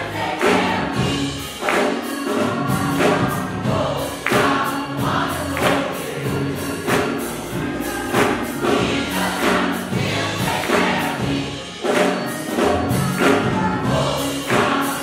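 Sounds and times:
gospel choir singing: 0:00.0 - 0:15.0
keyboard accompaniment: 0:00.0 - 0:15.0
percussive beat: 0:00.0 - 0:15.0.

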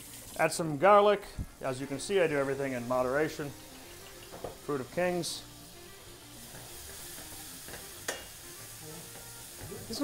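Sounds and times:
food sizzling in a pan: 0:00.0 - 0:10.0
sharp tap on pan: 0:06.5 - 0:08.4.

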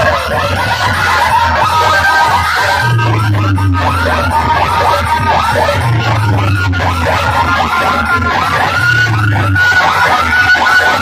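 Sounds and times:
heavy bass: 0:00.0 - 0:11.0
high wavering vocal-like sounds: 0:00.0 - 0:11.0
loud dj music: 0:00.0 - 0:11.0.

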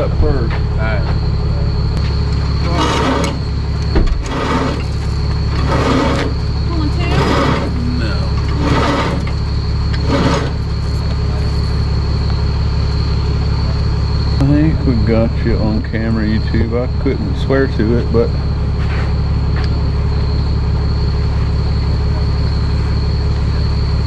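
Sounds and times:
truck engine idling: 0:00.0 - 0:24.0
short noisy bursts: 0:04.2 - 0:10.8.

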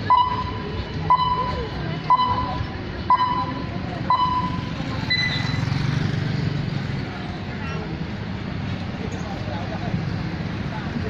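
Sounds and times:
time signal beeps: 0:00.0 - 0:05.6
street traffic noise: 0:00.0 - 0:11.0.

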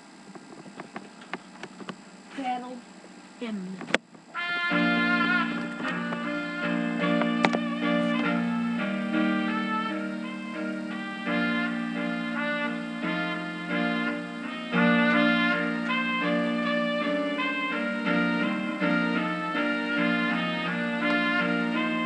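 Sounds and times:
piano keyboard playing: 0:04.4 - 0:22.0.

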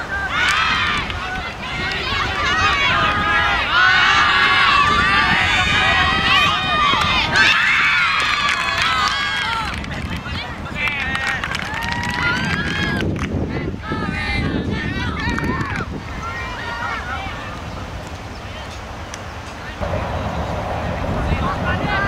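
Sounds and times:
players shouting: 0:00.0 - 0:09.8.

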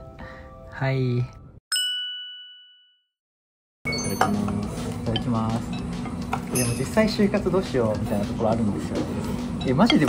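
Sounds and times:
cafe room sound: 0:03.9 - 0:10.0.

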